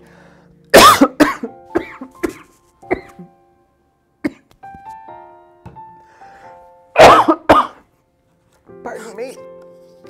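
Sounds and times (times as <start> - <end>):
man coughing: 0.8 - 3.3, 7.0 - 7.8.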